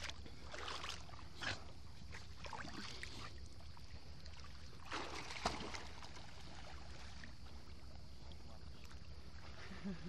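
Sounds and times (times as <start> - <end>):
steady low hum: 0.0 - 10.0
sea water splashing at shore: 4.4 - 7.5.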